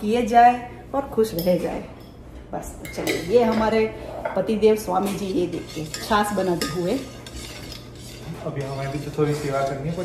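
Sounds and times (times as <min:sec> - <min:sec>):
spoon clinking against pot: 0:05.0 - 0:10.0.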